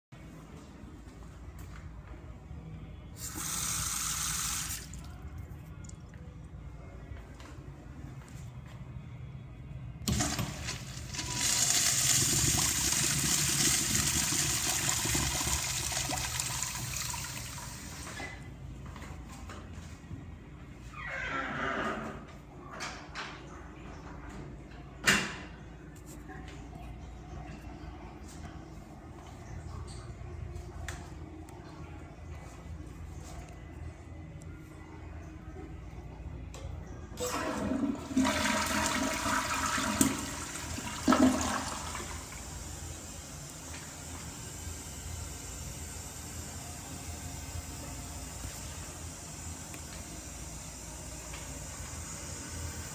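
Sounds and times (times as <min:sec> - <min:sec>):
toilet flushing: 0:03.2 - 0:05.0, 0:10.0 - 0:18.4, 0:37.2 - 0:46.5.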